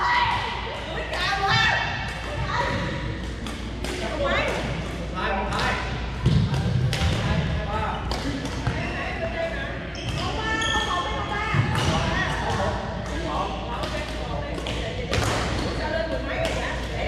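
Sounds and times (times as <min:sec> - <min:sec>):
voices talking in echoing hall: 0:00.0 - 0:17.0
shuttlecock hits and thuds: 0:02.0 - 0:05.0.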